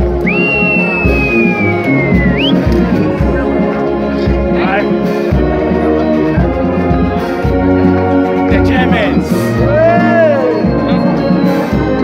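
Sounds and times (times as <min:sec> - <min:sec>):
brass band playing chords: 0:00.0 - 0:12.0.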